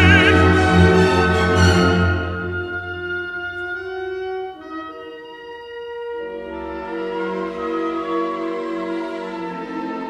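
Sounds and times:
orchestra playing sustained chords: 0.0s - 10.0s.

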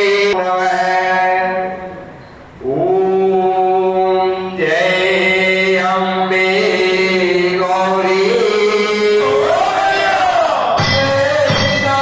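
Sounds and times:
voices chanting long notes: 8.1s - 12.0s.

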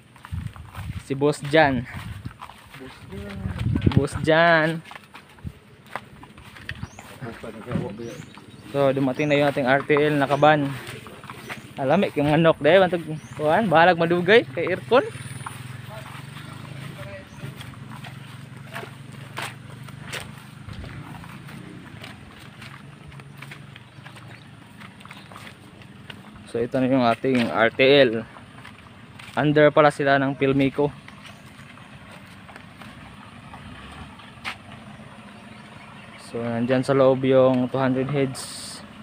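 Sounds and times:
footsteps on grass: 0.0s - 39.0s
van engine idling: 0.0s - 39.0s.

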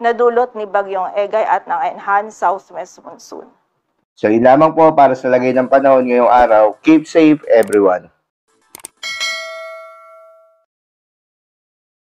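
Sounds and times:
notification bell ding: 9.0s - 10.7s.

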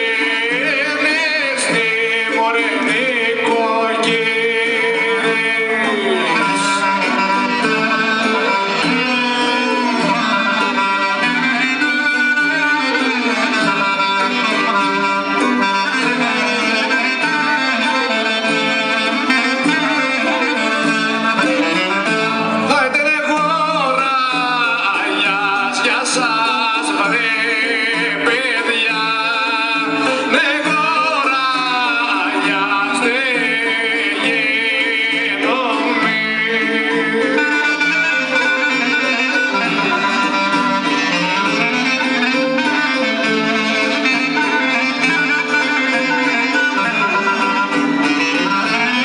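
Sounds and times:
clarinet-led folk band with singing: 0.0s - 49.0s.

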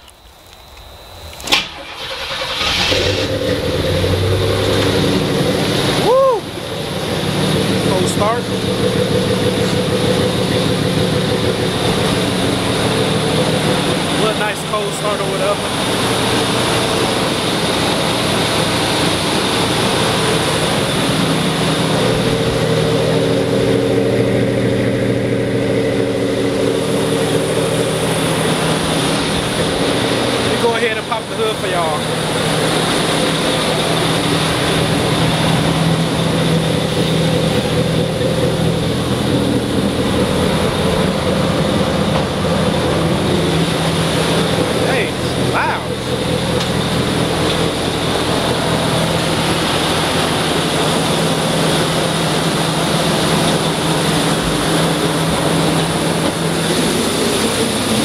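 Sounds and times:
car engine idling: 0.7s - 58.0s.

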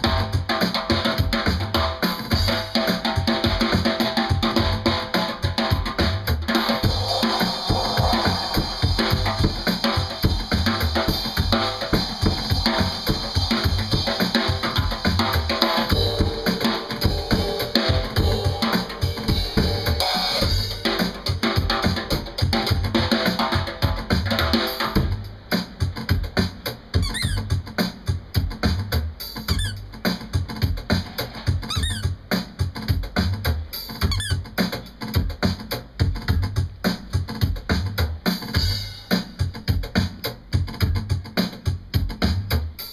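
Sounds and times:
drum kit with cymbals: 0.0s - 42.9s
short high squeaks: 27.0s - 27.4s, 29.5s - 29.8s, 31.6s - 32.1s, 34.0s - 34.4s.

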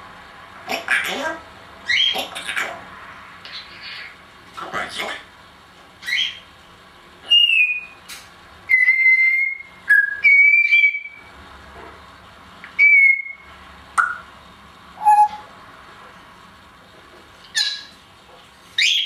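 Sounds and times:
parrot whistling: 7.3s - 8.0s, 8.7s - 11.3s, 12.8s - 14.3s, 15.0s - 15.5s, 18.8s - 19.0s.

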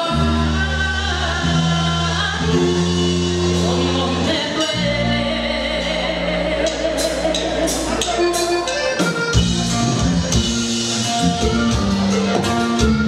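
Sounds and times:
person singing: 0.0s - 8.8s
live band playing: 0.0s - 13.0s.

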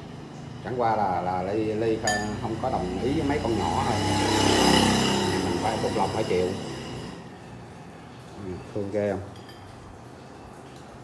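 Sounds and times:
faint light clinks: 9.3s - 11.0s.

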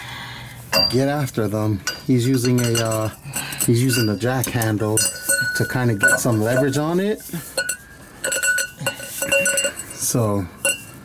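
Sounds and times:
steel tools clinking: 0.7s - 11.0s.

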